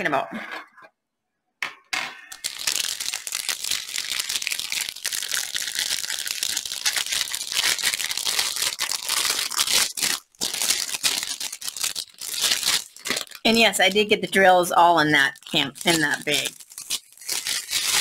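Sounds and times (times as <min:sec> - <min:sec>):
plastic packaging crinkling: 0:02.2 - 0:18.0.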